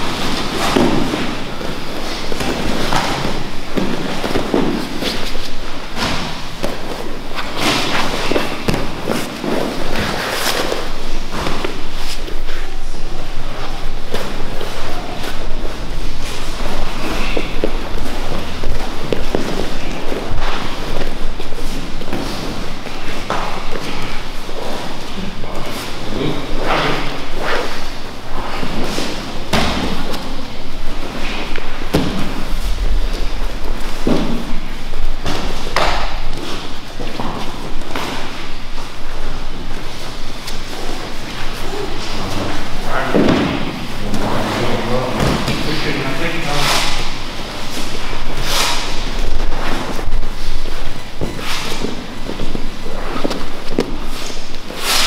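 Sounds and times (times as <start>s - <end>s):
bodies thudding on mats: 0.0s - 12.3s, 28.5s - 38.6s
voices talking: 41.1s - 47.3s.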